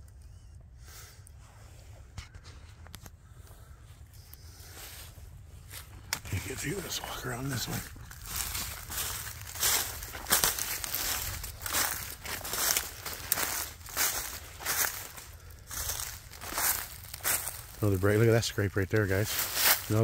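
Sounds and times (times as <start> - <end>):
footsteps through dry leaves: 4.6 - 20.0.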